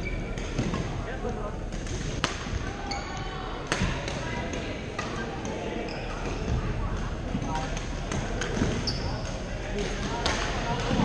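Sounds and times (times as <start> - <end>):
background chatter: 0.0 - 11.0
rackets hitting shuttlecock: 1.7 - 2.7
shoe squeaks: 8.8 - 9.2.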